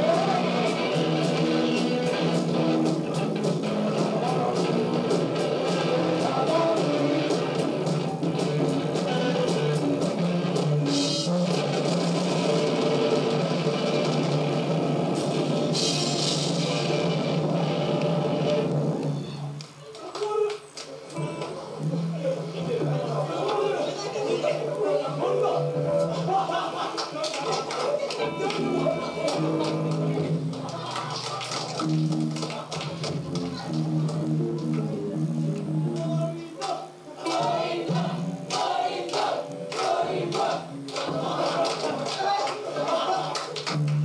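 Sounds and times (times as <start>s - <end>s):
drum kit: 0.0s - 19.6s, 28.5s - 36.2s, 37.3s - 42.2s
electric guitar: 0.0s - 19.7s, 28.1s - 36.2s
held low guitar notes: 33.1s - 36.2s.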